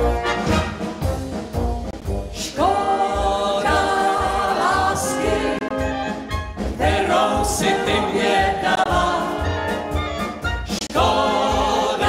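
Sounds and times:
brass band playing: 0.0 - 12.0
vocalists singing together: 2.4 - 5.9, 6.7 - 10.0, 10.7 - 12.0.

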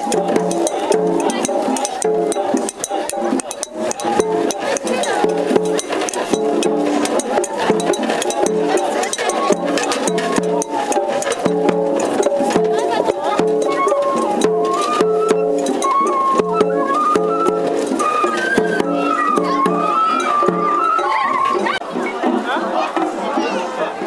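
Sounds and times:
taiko drums: 0.0 - 23.2
festival melody: 0.0 - 24.0
voices: 0.0 - 24.0.

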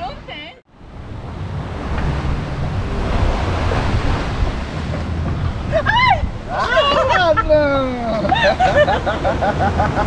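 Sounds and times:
surf washing on shore: 0.0 - 10.0
wind rumbling on microphone: 0.0 - 10.0.

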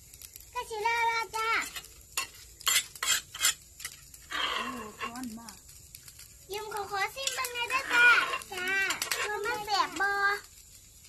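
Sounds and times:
spoon scraping plate: 1.6 - 5.1, 7.2 - 9.4.

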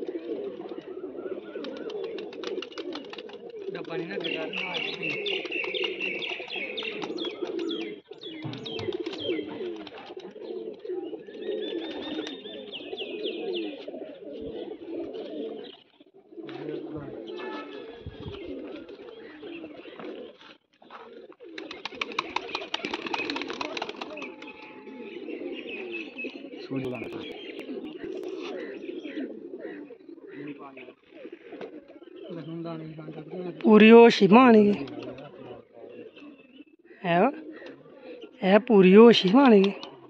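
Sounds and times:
wings fluttering: 0.0 - 15.6, 17.4 - 25.1, 25.8 - 30.4
pigeons cooing: 0.0 - 40.0.

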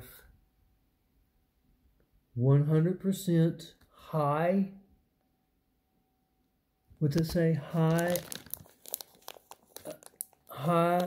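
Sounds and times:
plastic bag crinkling: 7.1 - 11.0.

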